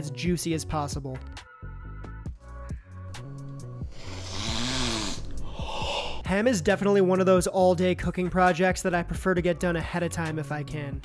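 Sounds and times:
man sniffing deeply: 3.2 - 6.3.

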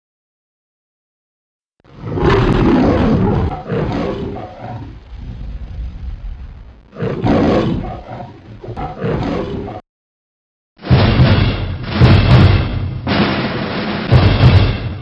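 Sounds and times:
lion roaring: 1.9 - 9.8.

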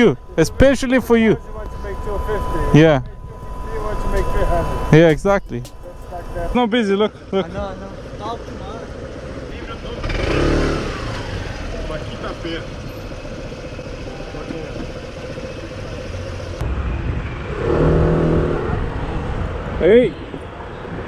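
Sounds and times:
hum of motor vehicles: 0.0 - 21.0
engine revving: 8.3 - 19.4.

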